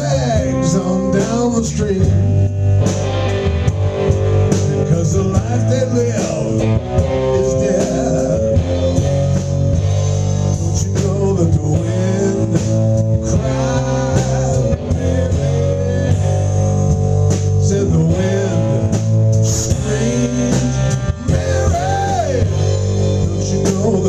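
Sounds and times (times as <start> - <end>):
drum kit: 0.0 - 24.0
electric bass: 0.0 - 24.0
electric guitar: 0.0 - 24.0.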